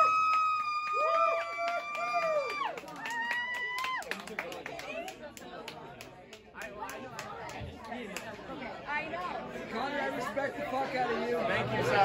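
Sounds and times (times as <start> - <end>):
people talking at once: 2.7 - 12.0.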